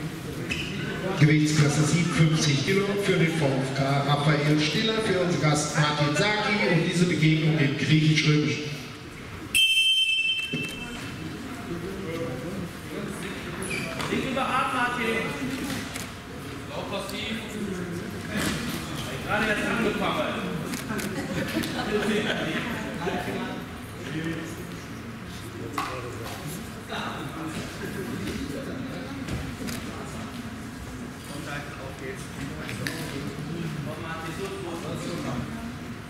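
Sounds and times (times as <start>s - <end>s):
referee's whistle: 9.5s - 11.0s
murmuring voices: 10.6s - 36.0s.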